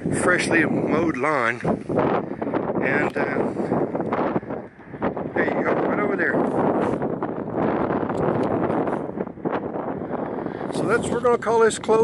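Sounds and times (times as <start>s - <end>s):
strong wind buffeting microphone: 0.0s - 12.0s.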